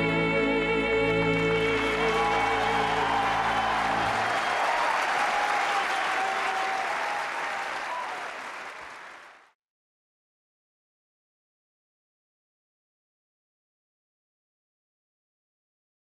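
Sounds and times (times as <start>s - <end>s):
audience applause: 1.3s - 9.6s.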